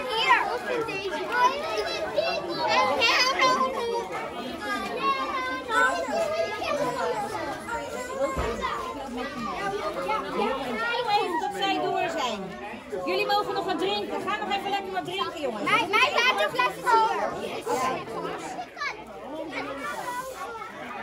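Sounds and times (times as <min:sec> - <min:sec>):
children chattering: 0:00.0 - 0:21.0.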